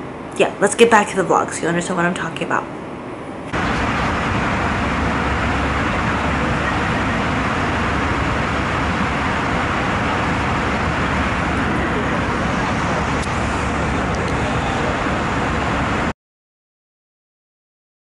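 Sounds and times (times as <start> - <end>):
airliner cabin roar: 0.0 - 16.2.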